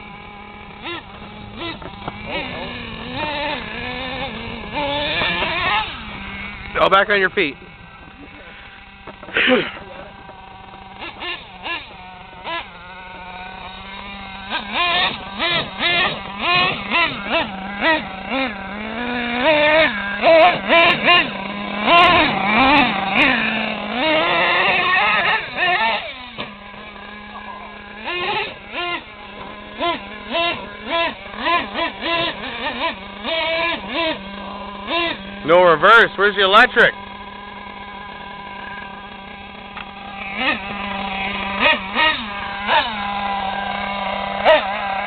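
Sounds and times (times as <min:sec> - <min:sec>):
steady low hum: 0:00.0 - 0:45.0
toy truck motor revving: 0:00.0 - 0:45.0.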